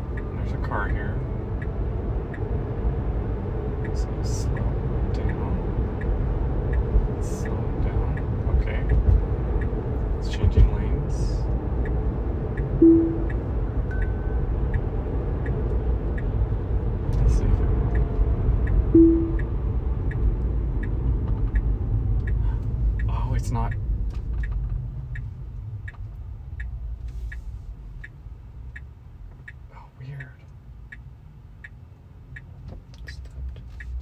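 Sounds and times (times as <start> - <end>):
road and tyre noise: 0.0 - 34.0
turn signal ticking: 0.0 - 34.0
short low tone: 12.8 - 14.5, 19.0 - 19.5.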